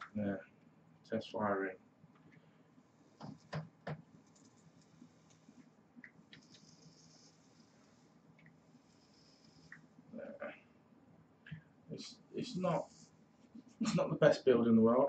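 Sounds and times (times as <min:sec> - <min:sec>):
faint high hiss: 0:00.0 - 0:01.8, 0:02.8 - 0:10.7, 0:11.4 - 0:15.0.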